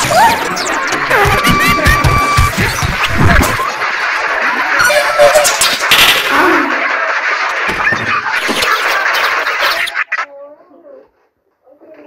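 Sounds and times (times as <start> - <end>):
jumble of overlapping app audio: 0.0 - 12.0.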